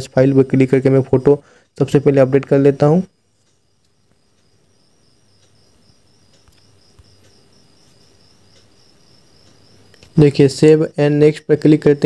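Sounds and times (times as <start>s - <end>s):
soft clicks: 3.4s - 4.6s, 6.3s - 7.5s.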